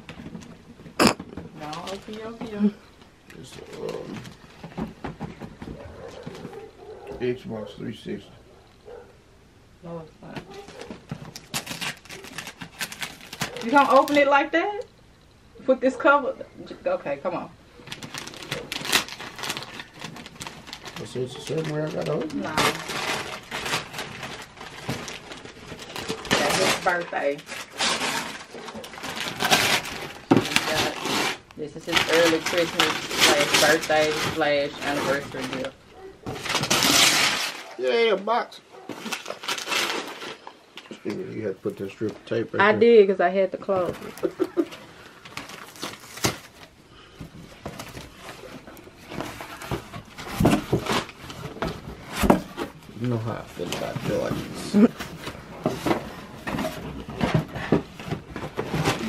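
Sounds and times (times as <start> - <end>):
wrapping paper crinkling: 1.6 - 2.4, 10.5 - 14.4, 17.8 - 37.8, 38.8 - 41.0, 43.9 - 59.0.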